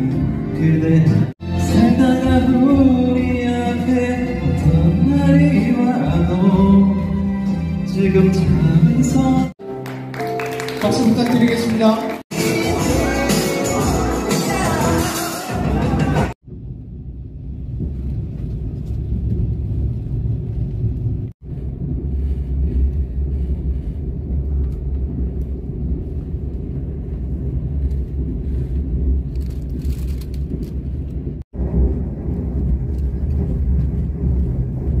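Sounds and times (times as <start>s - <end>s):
train rumble inside cabin: 16.3s - 35.0s.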